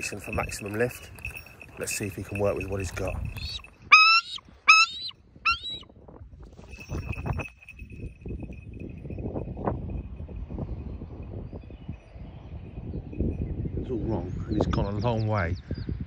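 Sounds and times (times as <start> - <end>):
eagle calling: 0.0 - 5.8
wind buffeting microphone: 0.0 - 16.0.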